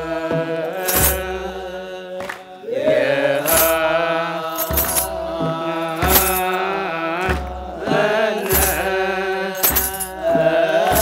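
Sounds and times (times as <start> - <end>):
men chanting in unison: 0.0 - 11.0
sharp percussion strikes: 0.0 - 11.0
low drum beat: 2.8 - 11.0.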